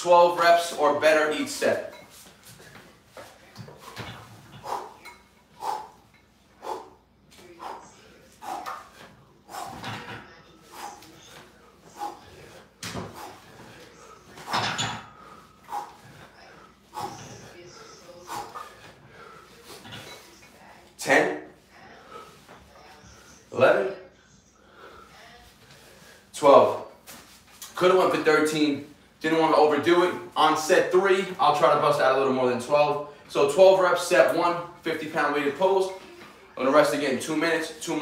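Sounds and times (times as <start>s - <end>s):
man breathing hard and grunting: 4.6s - 9.9s, 11.9s - 14.2s.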